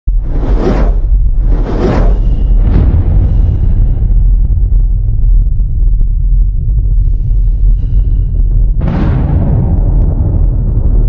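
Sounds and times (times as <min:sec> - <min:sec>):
deep low rumble: 0:00.0 - 0:11.0.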